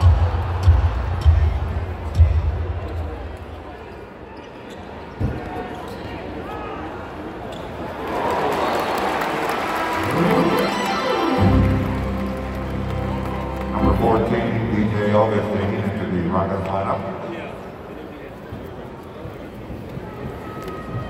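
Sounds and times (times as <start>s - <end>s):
rising tone: 10.0s - 13.7s
bass-heavy arena music: 10.0s - 15.4s.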